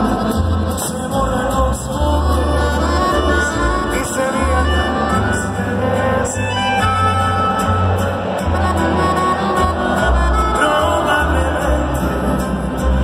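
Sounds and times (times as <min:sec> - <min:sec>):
deep bass notes: 0:00.0 - 0:13.0
live band through pa: 0:00.0 - 0:13.0
person singing: 0:00.0 - 0:13.0.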